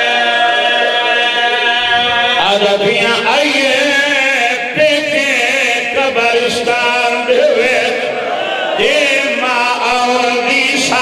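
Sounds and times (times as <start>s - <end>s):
man chanting into microphones: 1.9s - 8.2s, 8.8s - 11.0s.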